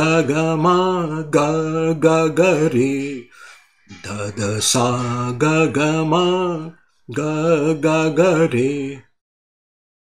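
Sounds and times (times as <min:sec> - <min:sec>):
man singing note syllables: 0:00.0 - 0:09.1.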